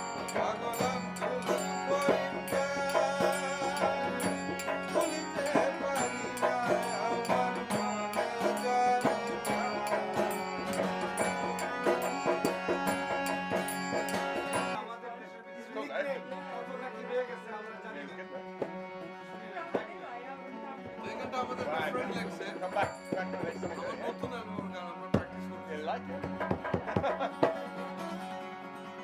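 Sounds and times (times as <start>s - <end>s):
acoustic guitar: 0.0s - 14.8s, 26.0s - 29.0s
drum beating: 0.0s - 14.8s, 18.6s - 20.0s, 20.8s - 27.8s
hand cymbals: 0.0s - 14.8s
man singing: 0.0s - 14.8s
harmonium: 0.0s - 14.9s, 15.6s - 29.0s.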